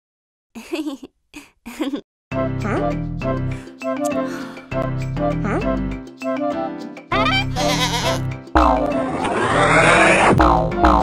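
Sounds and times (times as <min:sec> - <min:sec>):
children's background music: 0:02.3 - 0:09.8, 0:10.4 - 0:11.0
cartoon sheep bleating: 0:07.1 - 0:08.3
sound effect with rising sweep: 0:08.6 - 0:11.0.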